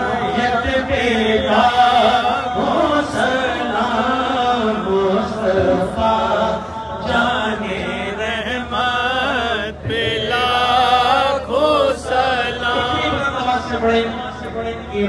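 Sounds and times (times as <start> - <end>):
man chanting into a microphone: 0.0 - 15.0.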